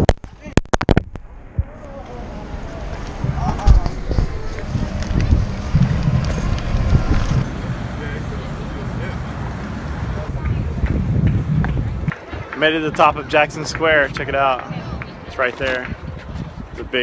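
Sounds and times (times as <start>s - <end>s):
wind buffeting microphone: 1.2s - 7.7s, 8.4s - 17.0s.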